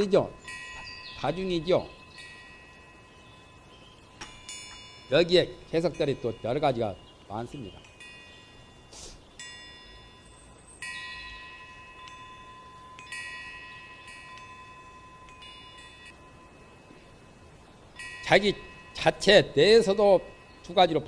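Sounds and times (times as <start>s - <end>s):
faint chimes ringing: 0.0s - 21.0s.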